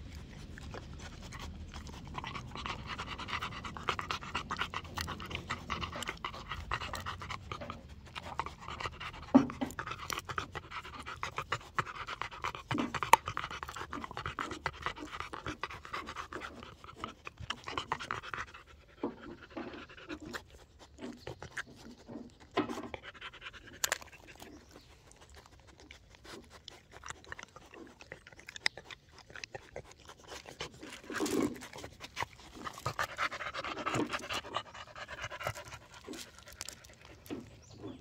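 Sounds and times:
dog chewing bread: 0.0s - 38.0s
dog panting: 0.0s - 38.0s.

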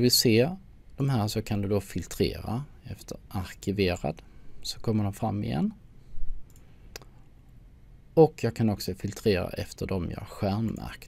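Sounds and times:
computer mouse clicks: 6.4s - 7.1s.

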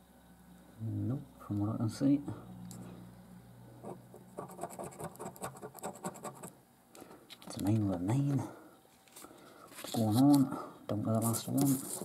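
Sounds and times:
coin scraping scratch card: 4.4s - 6.5s, 11.2s - 12.0s.

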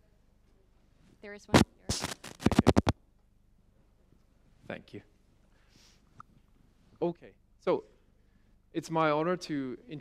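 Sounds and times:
microphone handling scrapes and knocks: 1.0s - 2.9s.

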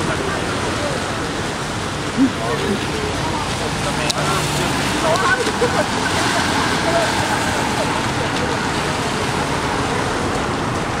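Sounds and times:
traffic on a wet street: 0.0s - 11.0s.

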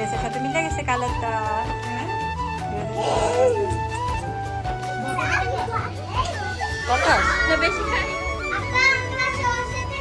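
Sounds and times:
background music: 0.0s - 10.0s
children shouting and chattering: 2.9s - 10.0s.

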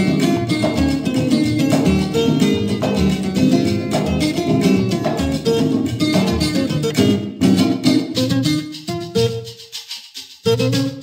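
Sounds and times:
latin dance band instrumental: 0.0s - 11.0s.

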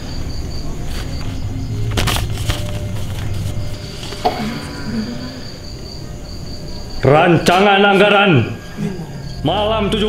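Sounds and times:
crickets chirping: 0.0s - 10.0s
paper rustling: 0.8s - 4.6s
sharp paper crackles: 0.9s - 4.2s.

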